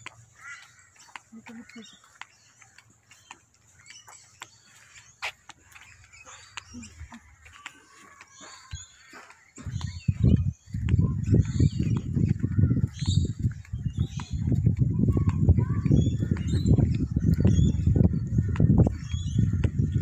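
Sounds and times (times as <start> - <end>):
wind buffeting microphone: 5.7 - 20.0.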